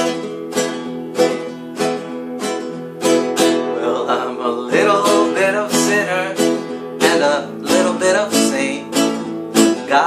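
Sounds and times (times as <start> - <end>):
acoustic guitar strumming: 0.0 - 10.0
man singing wordless line: 3.6 - 10.0.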